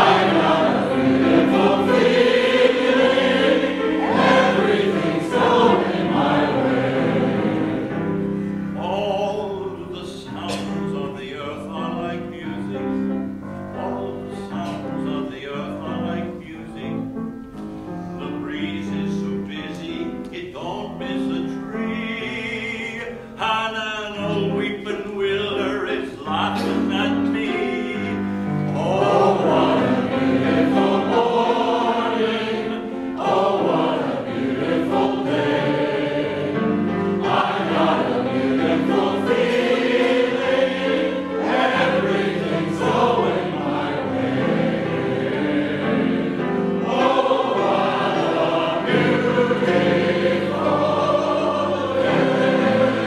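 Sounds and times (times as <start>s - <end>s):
audience singing: 0.0s - 11.4s, 27.9s - 53.0s
piano accompaniment: 0.0s - 53.0s
man singing solo: 8.8s - 13.1s, 13.8s - 17.2s, 18.2s - 30.0s.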